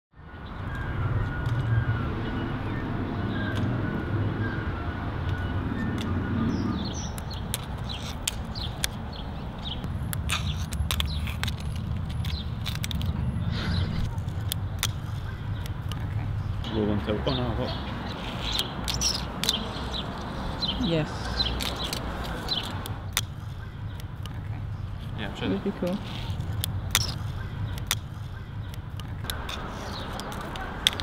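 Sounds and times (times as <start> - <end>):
low rumble of street traffic: 0.2 - 31.0
fingerboard clicking on stone: 26.1 - 31.0.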